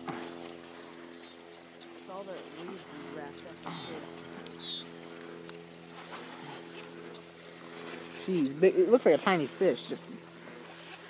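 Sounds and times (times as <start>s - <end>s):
distant engine droning: 0.0s - 11.0s.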